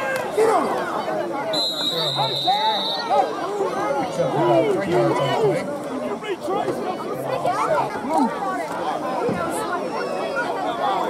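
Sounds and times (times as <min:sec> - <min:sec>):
overlapping spectator chatter: 0:00.0 - 0:11.0.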